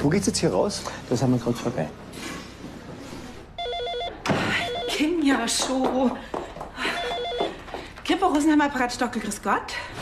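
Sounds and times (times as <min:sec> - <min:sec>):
electronic telephone ringing: 0:03.6 - 0:05.0, 0:07.0 - 0:07.6.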